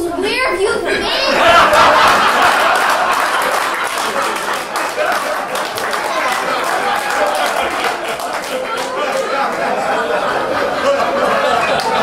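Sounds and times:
audience applauding: 0:01.4 - 0:12.0.

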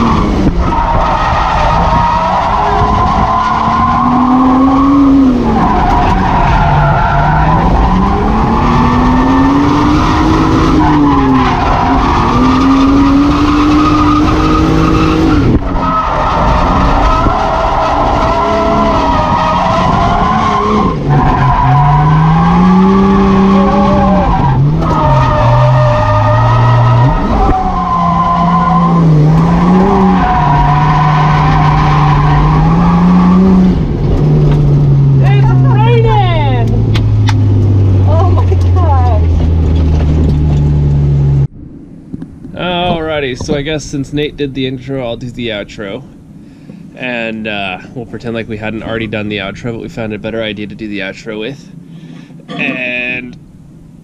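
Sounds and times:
tyres sliding and squealing: 0:00.0 - 0:33.6
car engine revving hard: 0:00.0 - 0:36.0.

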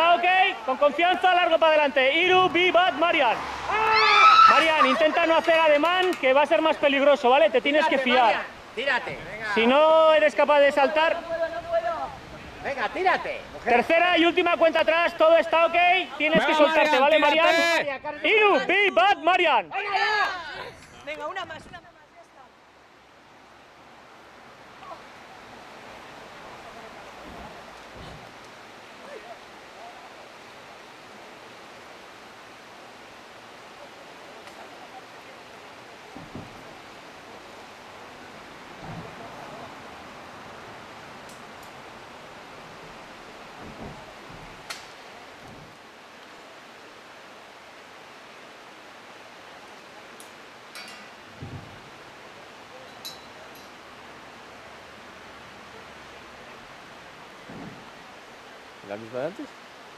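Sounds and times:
even outdoor hiss: 0:00.0 - 0:59.9
faint knocks: 0:36.1 - 0:36.9, 0:43.5 - 0:45.8.

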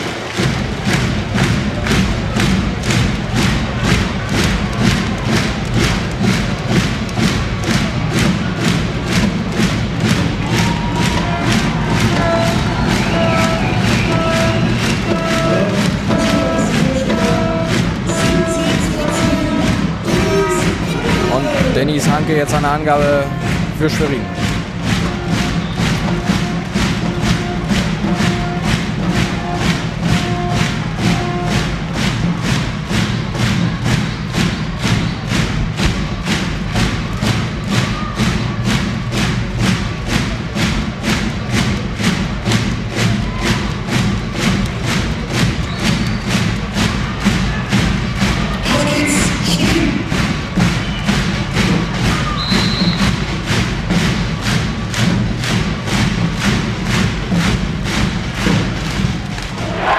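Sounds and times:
bass drums beating: 0:00.0 - 0:59.9.

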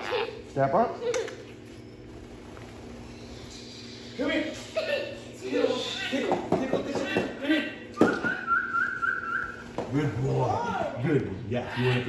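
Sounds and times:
steady wavering whistle: 0:08.0 - 0:09.7.

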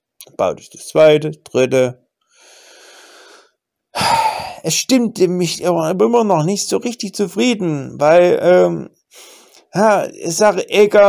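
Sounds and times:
man breathing into microphone: 0:02.3 - 0:04.6, 0:09.1 - 0:09.7.

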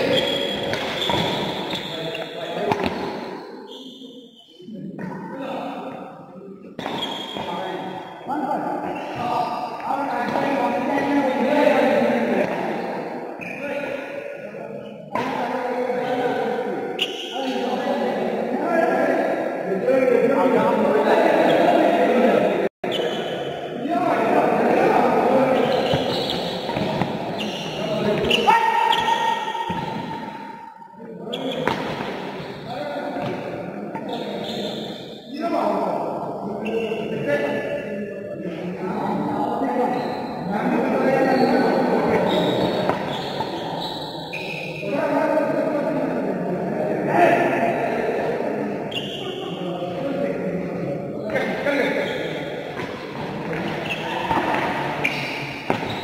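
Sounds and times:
voices in echoing hall: 0:00.0 - 0:56.0
rackets striking shuttlecock: 0:02.7 - 0:03.2.

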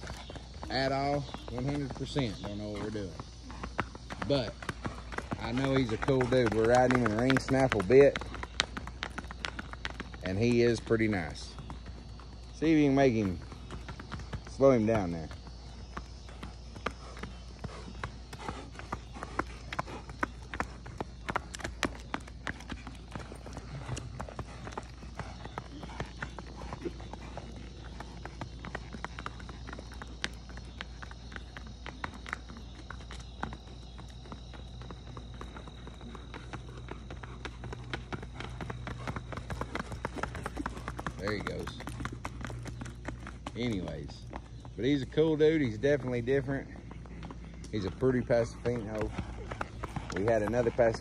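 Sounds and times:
hooves clip-clopping on asphalt: 0:00.0 - 0:51.0.

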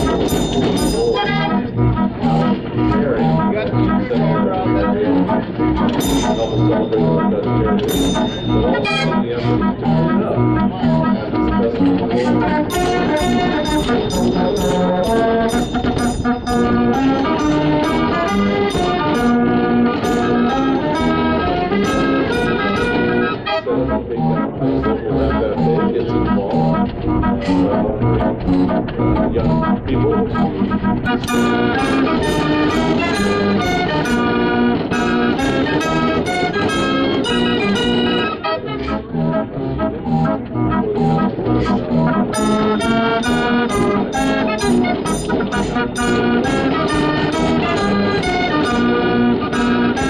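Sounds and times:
percussion beat: 0:00.0 - 0:01.6, 0:12.7 - 0:19.4
street organ playing: 0:00.0 - 0:50.0.

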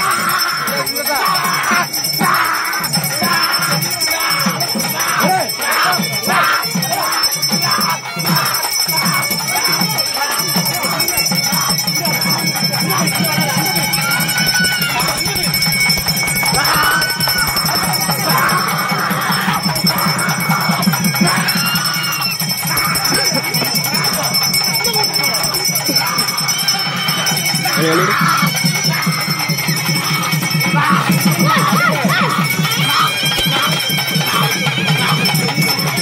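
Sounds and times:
bells jingling: 0:00.0 - 0:36.0
fast drumming: 0:00.0 - 0:36.0
voices in background: 0:00.0 - 0:36.0.

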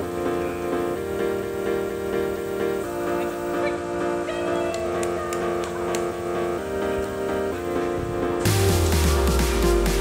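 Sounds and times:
repeating pitched notes music: 0:08.4 - 0:10.0.

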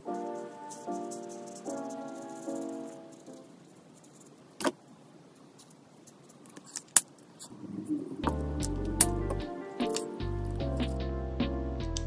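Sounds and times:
faint hiss: 0:00.0 - 0:10.6.

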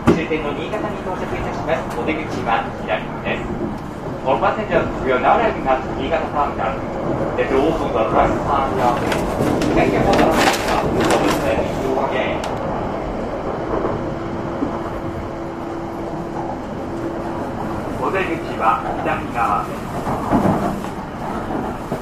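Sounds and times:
train clatter: 0:00.0 - 0:22.0
train rumbling on track: 0:00.0 - 0:22.0.

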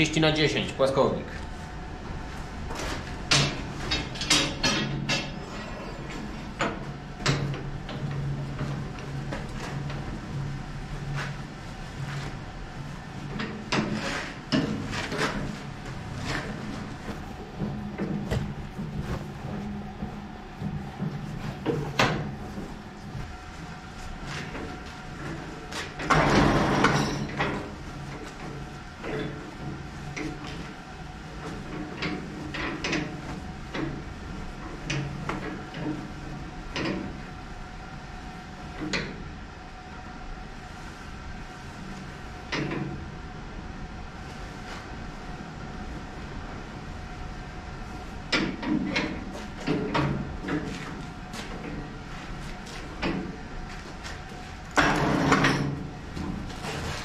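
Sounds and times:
bending machine humming: 0:00.0 - 0:57.0.

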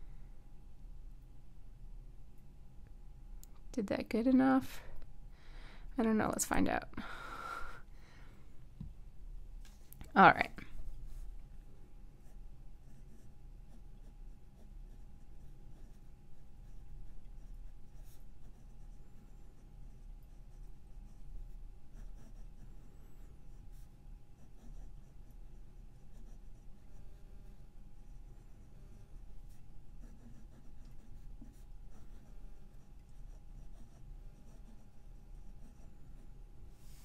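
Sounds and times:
pen scratching on paper: 0:12.2 - 0:36.4.

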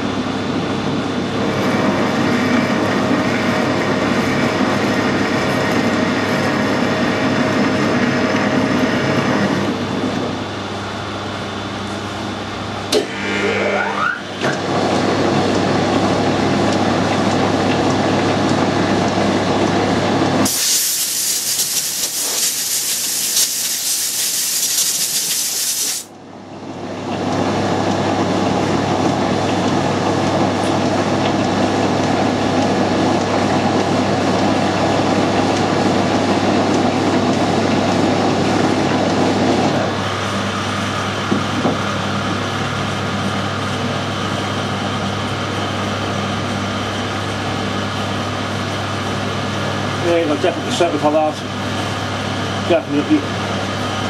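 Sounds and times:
metal lathe humming: 0:12.9 - 0:14.5
loud steady hiss: 0:20.5 - 0:26.1.

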